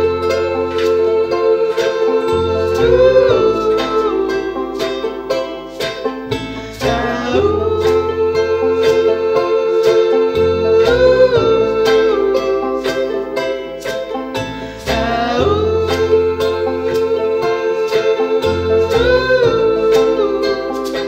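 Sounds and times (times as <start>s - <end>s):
plucked banjo and charango: 0.0s - 21.0s
upright bass notes: 0.0s - 21.0s
voices holding long notes: 0.0s - 21.0s.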